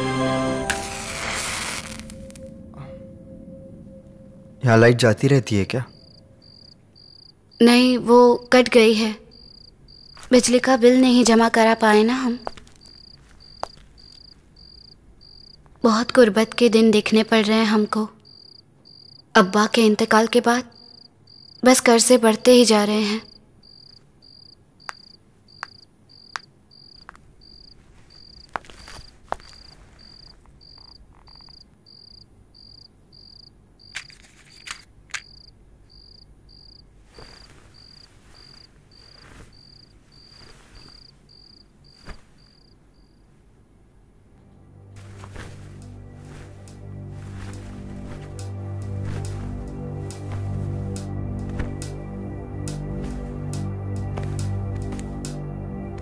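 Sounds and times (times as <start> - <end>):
crickets chirping: 0.8 - 56.0
soft rustles: 12.3 - 15.8, 27.0 - 31.6, 34.0 - 34.9, 37.0 - 43.6, 45.0 - 52.0, 52.7 - 53.4.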